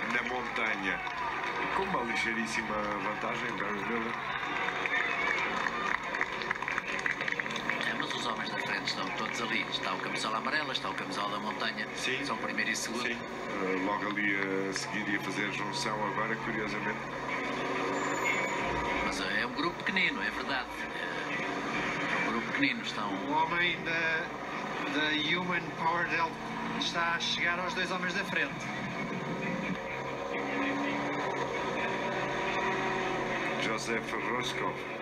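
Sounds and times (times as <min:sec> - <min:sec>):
race engine noise through tv speaker: 0:00.0 - 0:35.0.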